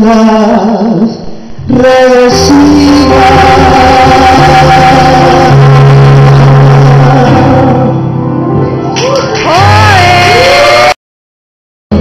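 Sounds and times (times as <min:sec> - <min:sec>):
electronic keyboard chords: 0:02.3 - 0:10.8.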